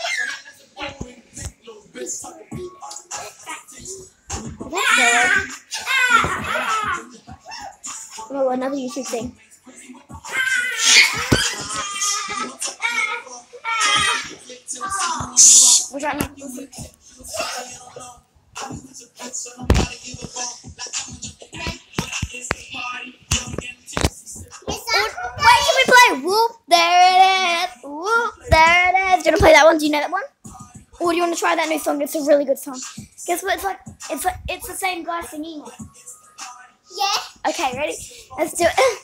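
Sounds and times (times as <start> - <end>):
children squealing and laughing: 0.0 - 0.6, 4.7 - 7.9, 10.2 - 15.9, 24.8 - 25.9
child calling out wordlessly: 4.7 - 5.5.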